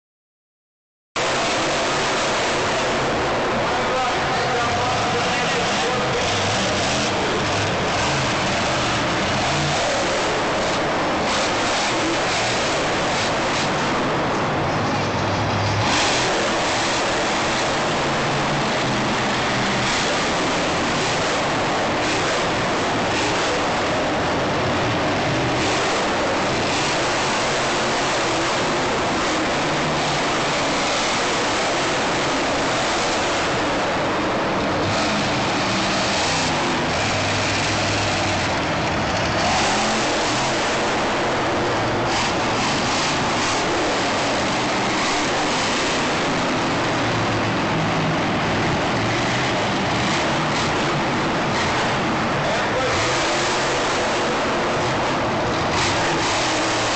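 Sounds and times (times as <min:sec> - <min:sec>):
monster truck engine revving: 0:01.2 - 0:56.9
stadium crowd din: 0:01.2 - 0:56.9.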